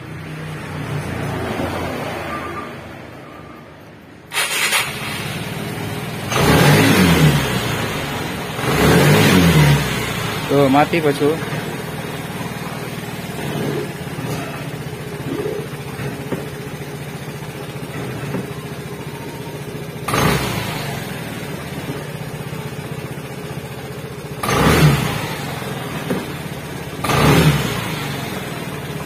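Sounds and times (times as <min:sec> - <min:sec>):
scooter engine running and revving: 0:00.0 - 0:02.3, 0:04.6 - 0:29.0.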